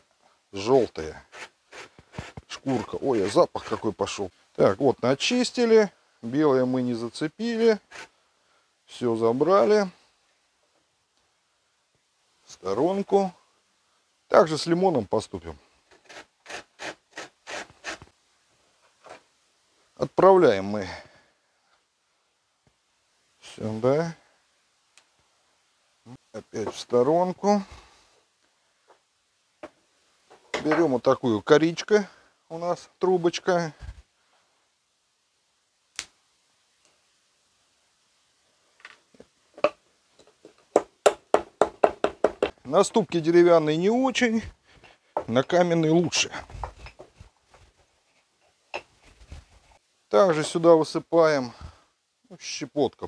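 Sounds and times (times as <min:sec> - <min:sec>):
lemon grating on metal grater: 0:01.3 - 0:04.0
wooden pestle knocking in mortar: 0:40.4 - 0:42.6.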